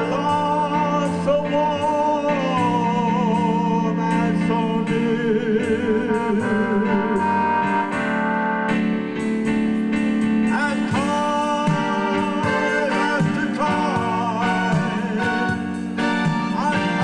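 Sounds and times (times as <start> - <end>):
slow instrumental ballad melody: 0.0 - 17.0.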